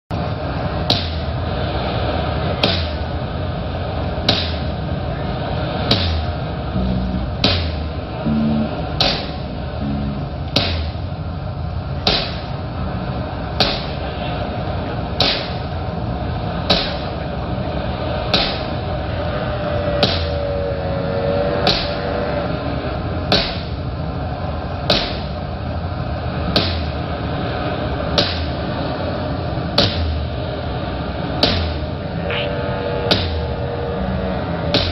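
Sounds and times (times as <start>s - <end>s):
rock band playing droning intro: 6.8s - 10.6s
sharp percussive hits: 6.8s - 11.0s.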